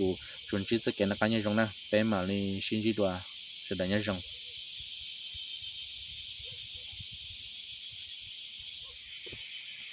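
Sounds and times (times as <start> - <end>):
high-pitched insect chorus: 0.0 - 9.9.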